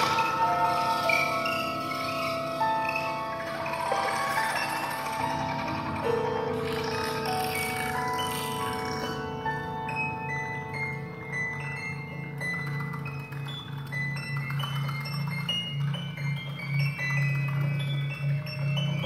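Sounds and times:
chamber music held tones: 0:00.0 - 0:19.0
steady low tone: 0:00.0 - 0:19.0.

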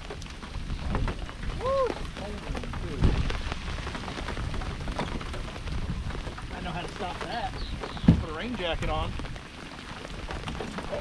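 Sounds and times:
rain pattering on boat: 0:00.0 - 0:11.0.

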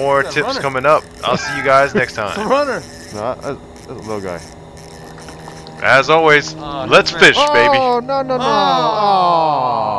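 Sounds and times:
man speaking: 0:00.0 - 0:04.4, 0:05.8 - 0:08.9
low steady hum: 0:00.0 - 0:09.9.

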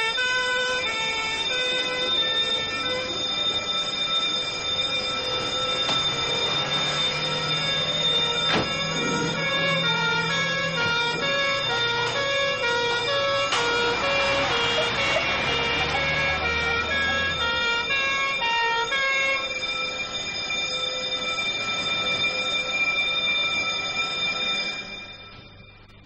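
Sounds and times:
two-tone siren: 0:00.0 - 0:26.0
vehicle engine running: 0:05.2 - 0:18.6.

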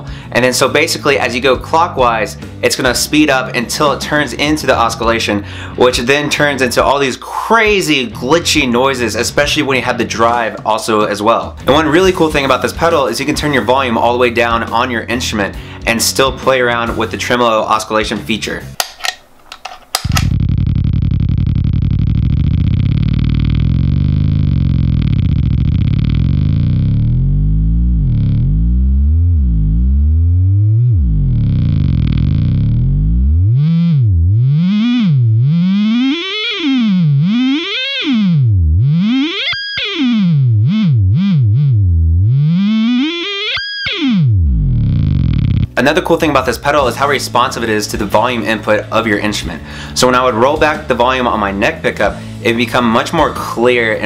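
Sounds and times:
distorted buzzing drone sliding pitch: 0:20.0 - 0:45.8.

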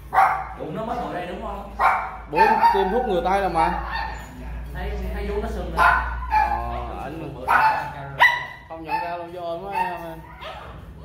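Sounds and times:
dog yipping: 0:01.8 - 0:04.5, 0:05.8 - 0:06.8, 0:07.5 - 0:10.9.

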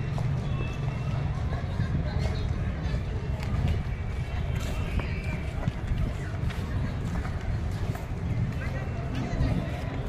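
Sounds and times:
footsteps: 0:00.0 - 0:10.0.

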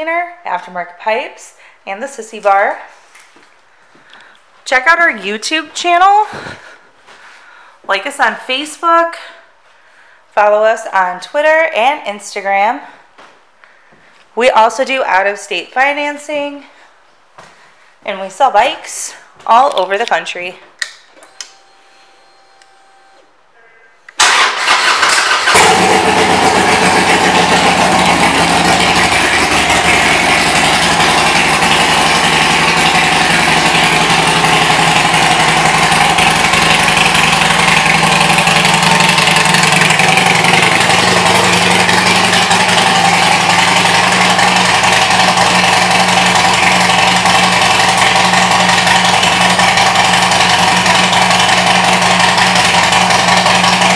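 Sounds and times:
motorcycle engine starting and idling: 0:24.2 - 0:53.9.

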